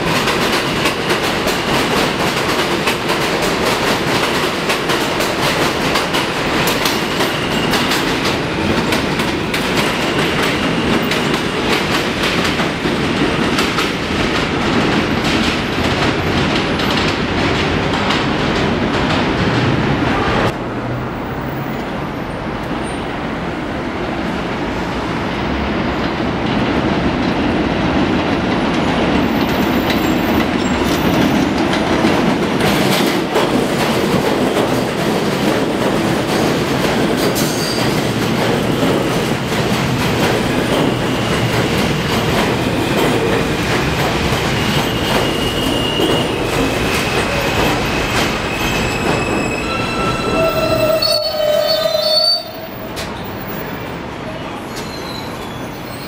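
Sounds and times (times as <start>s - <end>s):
train wheels rumbling on rails: 0.0s - 56.0s
wheel and brake squeals: 37.4s - 38.0s, 44.6s - 53.2s, 54.4s - 56.0s.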